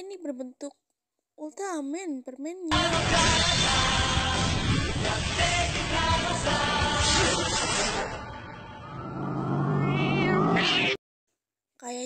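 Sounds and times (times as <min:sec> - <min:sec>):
cat-like yowling cry: 0:09.6 - 0:11.0.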